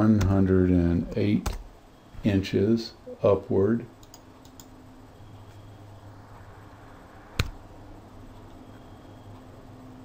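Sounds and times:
low steady hum: 0.0s - 10.0s
computer keys clicking: 4.0s - 4.8s
sharp click: 7.4s - 7.6s.

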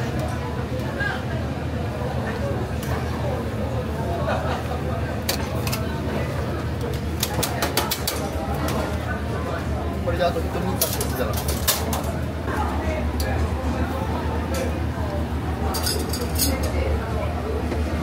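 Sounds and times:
burners and extractor rumble: 0.0s - 18.0s
faint voices: 0.0s - 18.0s
metal utensils and pans clinking: 10.7s - 12.2s, 15.7s - 16.9s.

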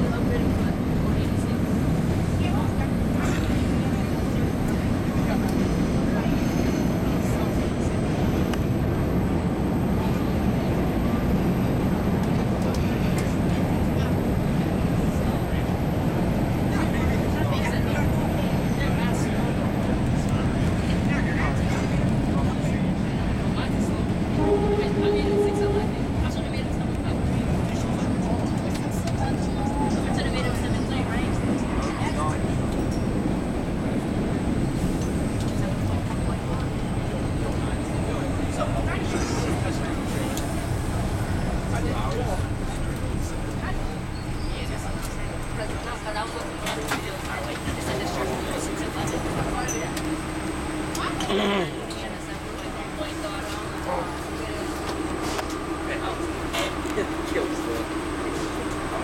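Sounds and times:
subway car rumbling on rails: 0.0s - 59.0s.

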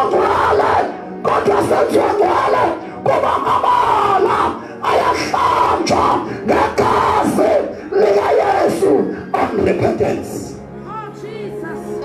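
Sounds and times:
loud distorted shouting through pa: 0.0s - 10.4s.

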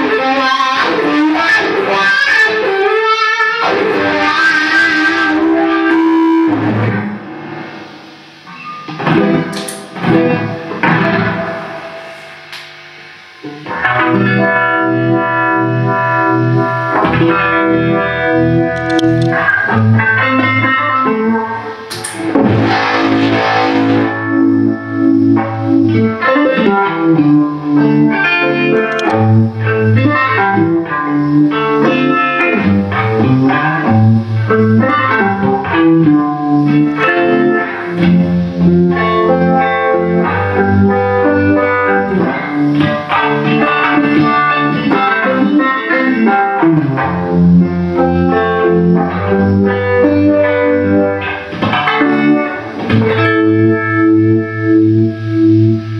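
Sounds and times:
distorted electric guitar: 0.0s - 55.9s.

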